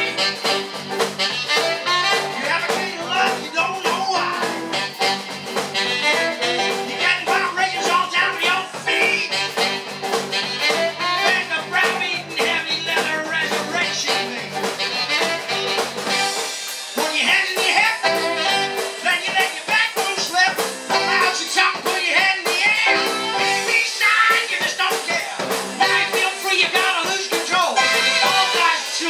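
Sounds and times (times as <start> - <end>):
saxophone: 0.0 - 26.7, 27.6 - 29.0
live rock and roll band: 0.0 - 29.0.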